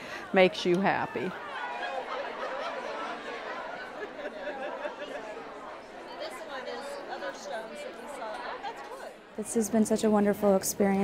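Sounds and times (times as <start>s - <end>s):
chatter of many women: 0.0s - 11.0s.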